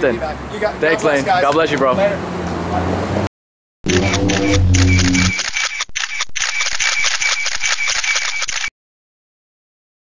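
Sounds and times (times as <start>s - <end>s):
low tone: 3.9s - 5.5s
camera shutter clicks: 3.9s - 8.7s.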